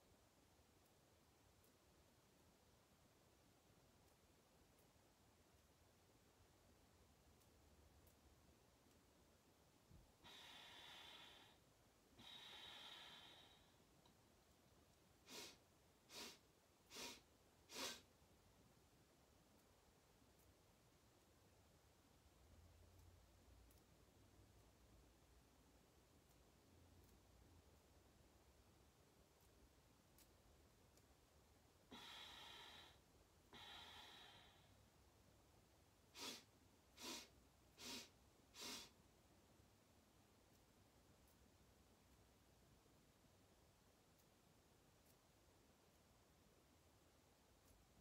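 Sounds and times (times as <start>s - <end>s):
breaths exhaled through the nose: 15.3s - 18.1s, 36.2s - 39.0s
breathing out through nose: 36.2s - 38.9s.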